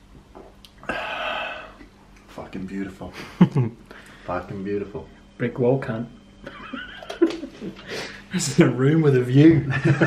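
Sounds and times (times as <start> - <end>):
man laughing quietly: 3.0 - 3.8, 6.4 - 8.3.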